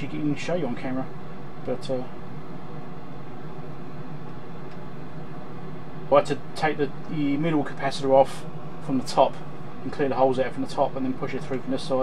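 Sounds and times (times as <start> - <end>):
small fan whirring: 0.0 - 12.0.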